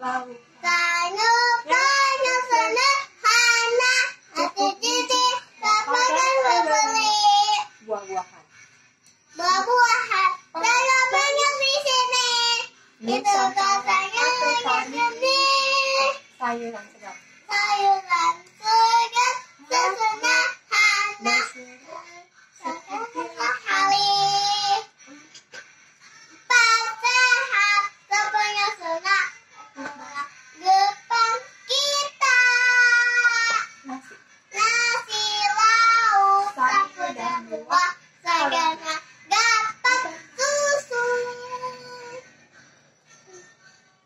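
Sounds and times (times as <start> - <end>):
girl singing: 0.0 - 7.8, 9.4 - 16.3, 17.5 - 25.2, 26.5 - 42.2.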